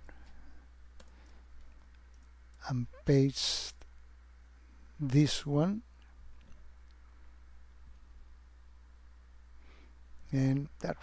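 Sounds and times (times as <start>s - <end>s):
low electrical hum: 0.0s - 11.0s
keyboard and mouse clicks: 1.0s - 2.6s.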